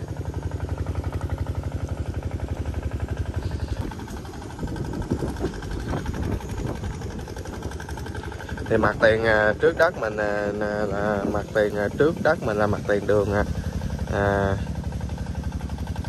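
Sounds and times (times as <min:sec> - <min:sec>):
engine idling with fast chug: 0:00.0 - 0:16.0.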